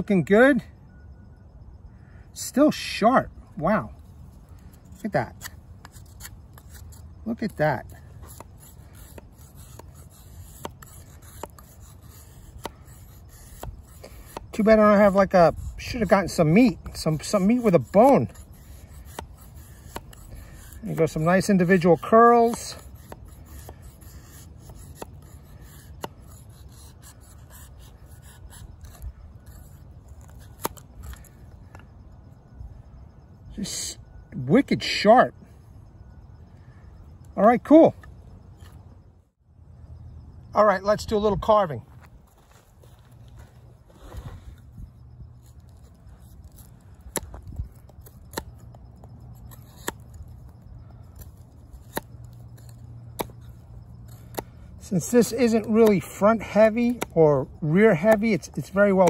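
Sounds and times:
knife shaving wooden stick: 3.6 - 31.8, 42.4 - 59.0.

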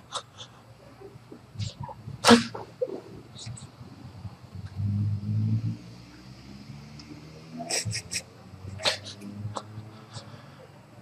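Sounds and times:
man breathing sharply: 9.8 - 11.0.

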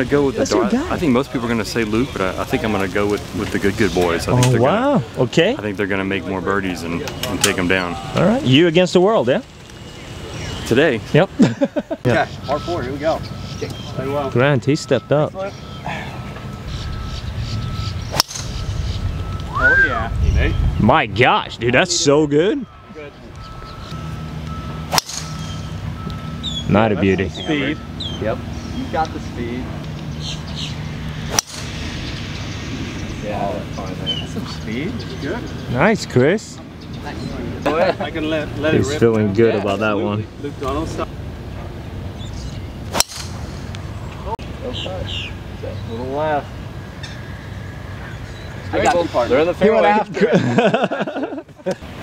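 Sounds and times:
faint steady high tone: 12.1 - 17.9
golf club striking ball: 18.1 - 18.6, 24.9 - 25.7, 31.2 - 31.8, 42.9 - 43.8.

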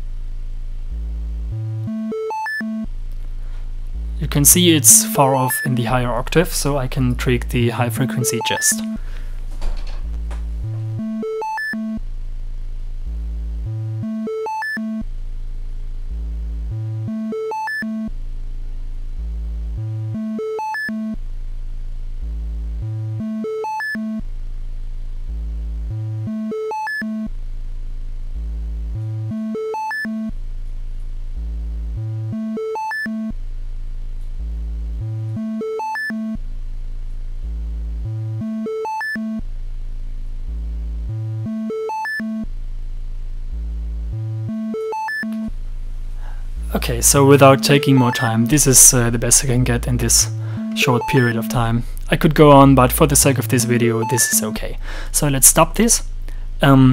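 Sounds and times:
synthesizer test notes: 4.0 - 12.0, 46.2 - 56.0.

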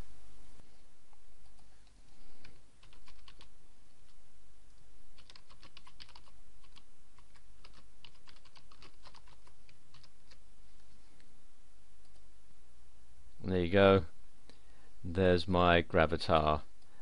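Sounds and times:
typing on computer keyboard: 2.8 - 3.5, 5.2 - 10.4.

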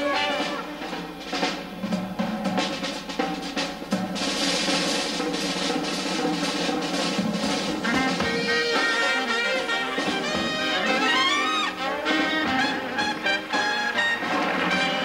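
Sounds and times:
snare and tom strokes: 0.0 - 15.0
snare roll: 0.0 - 15.0.

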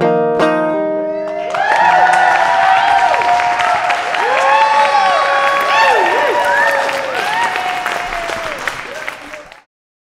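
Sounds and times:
audience applauding and cheering: 1.2 - 9.7
voices whooping: 1.4 - 9.5.

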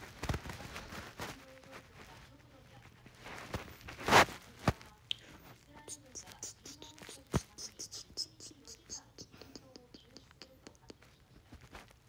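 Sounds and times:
handling rustle on phone: 0.0 - 5.7.

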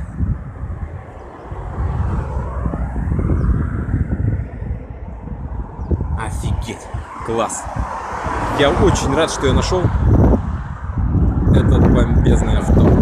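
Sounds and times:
passing vehicle rumble: 0.0 - 13.0.

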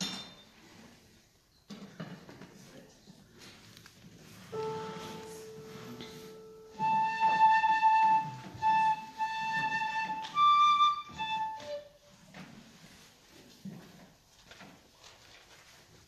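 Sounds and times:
solo flute playing: 4.5 - 12.1.

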